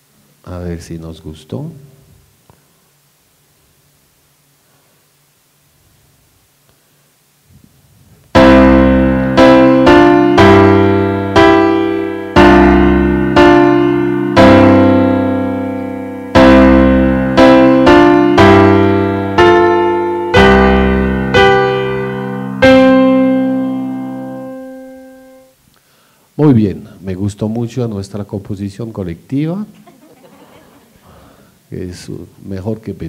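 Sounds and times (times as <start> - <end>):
slow piano piece: 8.2 - 25.6.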